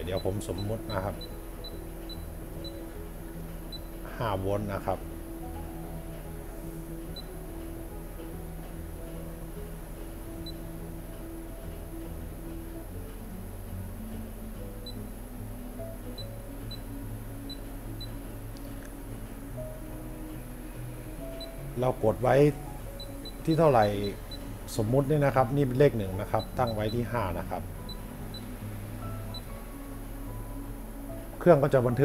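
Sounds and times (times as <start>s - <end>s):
high electronic beeps: 0.0s - 2.9s, 16.2s - 16.9s, 23.0s - 24.5s, 27.8s - 28.5s
soft background music: 0.0s - 32.0s.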